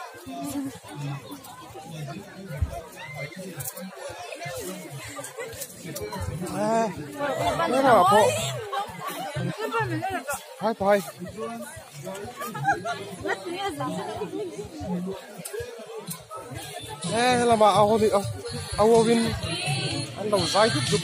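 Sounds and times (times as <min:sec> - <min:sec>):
overlapping chatter: 0:00.0 - 0:21.0.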